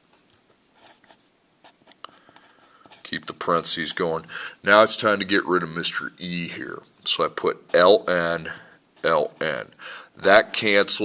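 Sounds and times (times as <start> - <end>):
pencil scratching on paper: 0.7 - 4.3, 7.4 - 11.0.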